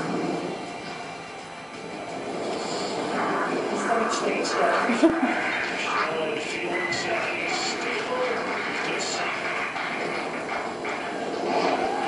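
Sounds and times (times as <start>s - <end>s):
noisy rumble: 0.0s - 12.0s
soundtrack over speakers: 0.0s - 12.0s.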